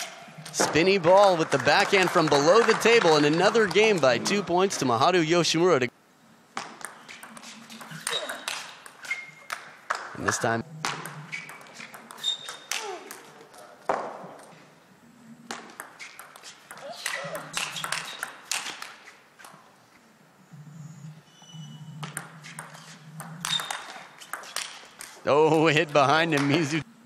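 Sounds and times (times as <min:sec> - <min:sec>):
low hum of sports hall: 0:00.0 - 0:27.0.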